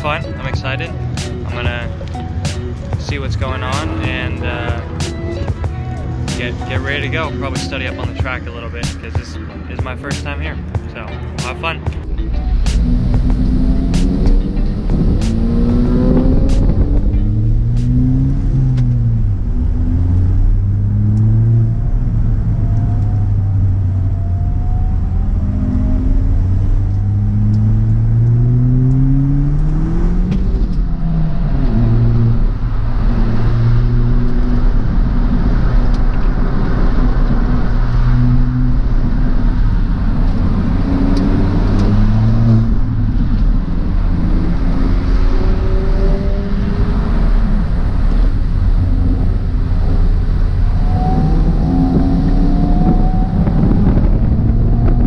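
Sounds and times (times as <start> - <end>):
car engine accelerating: 0.0 - 55.0.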